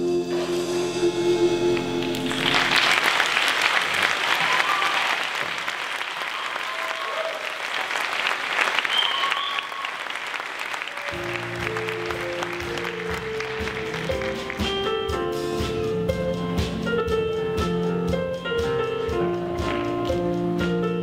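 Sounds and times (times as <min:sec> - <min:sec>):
instrumental music: 0:00.0 - 0:03.0, 0:11.2 - 0:21.0
audience applauding and cheering: 0:01.7 - 0:15.1.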